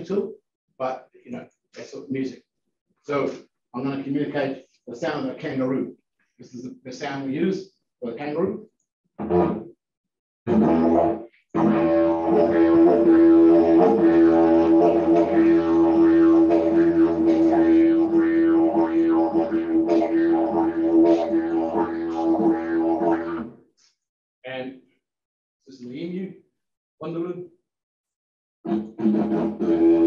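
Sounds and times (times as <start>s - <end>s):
didgeridoo drone with rhythmic pulses: 10.5s - 23.5s, 28.7s - 30.0s.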